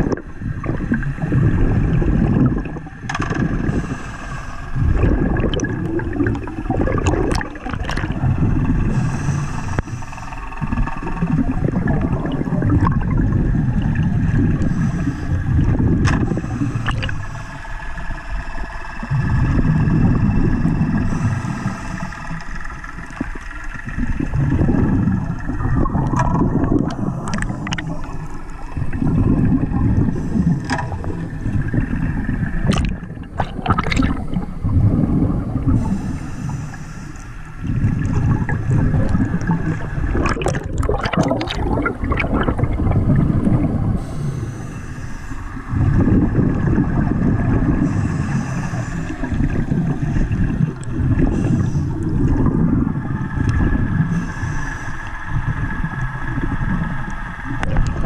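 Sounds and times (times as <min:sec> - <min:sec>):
faint steady whine: 0:00.0 - 0:58.0
muffled underwater rushing: 0:00.0 - 0:58.0.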